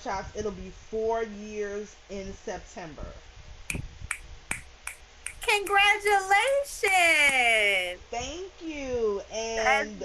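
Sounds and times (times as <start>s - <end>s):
fingers snapping: 3.7s - 5.8s.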